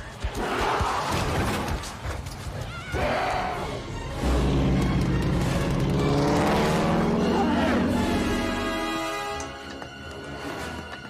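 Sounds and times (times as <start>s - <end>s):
street chaos sound effects: 0.0s - 9.4s.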